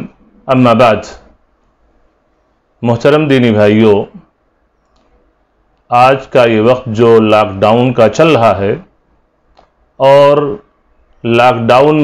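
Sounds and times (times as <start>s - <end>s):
man speaking: 0.0s - 1.3s, 2.8s - 4.3s, 5.9s - 8.9s, 10.0s - 12.0s
faint tiny clicks: 4.8s - 5.9s, 9.5s - 9.8s.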